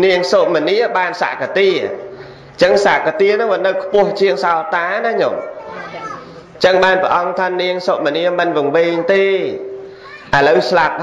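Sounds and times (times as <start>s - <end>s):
man giving a sermon: 0.0s - 5.6s, 6.2s - 11.0s.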